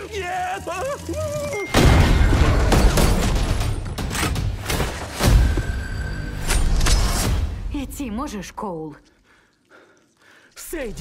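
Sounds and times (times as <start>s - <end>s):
man crying out: 0.0s - 1.8s.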